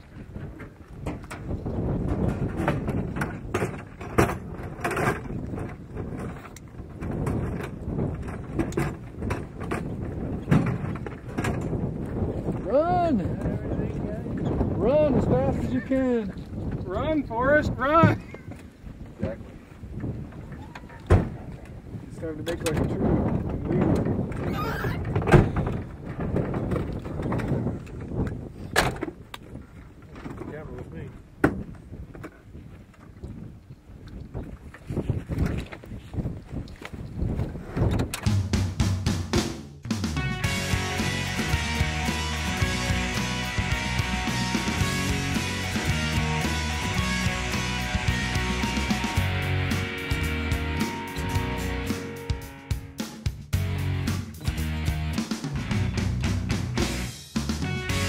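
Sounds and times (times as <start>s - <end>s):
wind on microphone: 0.0s - 38.5s
rock music with guitar: 39.9s - 58.0s.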